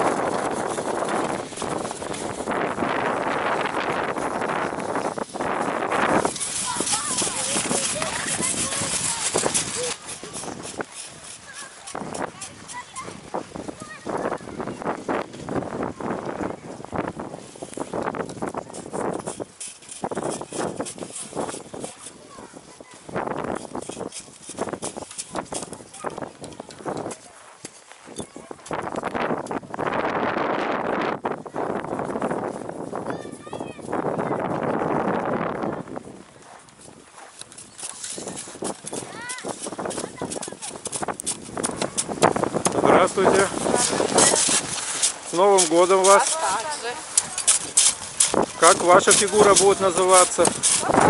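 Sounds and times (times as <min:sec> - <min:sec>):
footsteps crunching on frozen snow: 0:00.0 - 0:51.0
background voices: 0:41.6 - 0:51.0.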